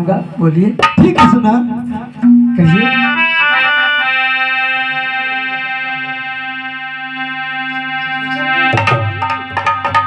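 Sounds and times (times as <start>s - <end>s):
sustained keyboard chord: 2.5s - 9.8s.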